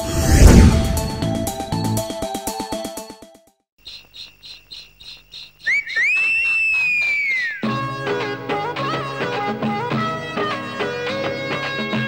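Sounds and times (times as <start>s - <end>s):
loud whistle: 5.6s - 7.7s.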